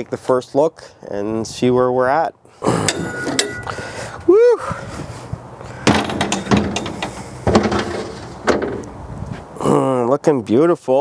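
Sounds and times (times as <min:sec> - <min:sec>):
metal grate scraping and rattling: 0:02.8 - 0:03.7, 0:05.8 - 0:09.1
metal door squeak: 0:02.9 - 0:03.7, 0:05.9 - 0:08.9.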